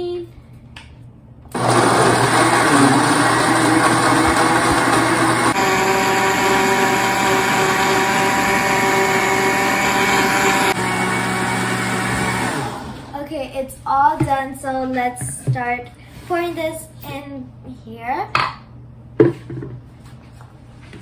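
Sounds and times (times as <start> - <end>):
blender running: 1.5 - 13.2.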